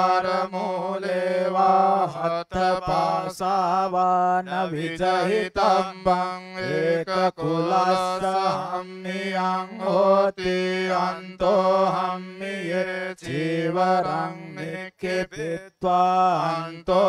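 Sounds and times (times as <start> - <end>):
man chanting: 0.0 - 17.0.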